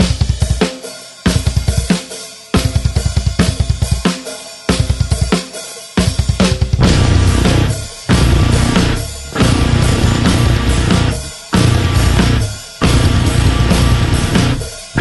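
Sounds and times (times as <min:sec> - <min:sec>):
bass drum and cymbal hits: 0:00.0 - 0:15.0
metal band playing: 0:00.0 - 0:15.0.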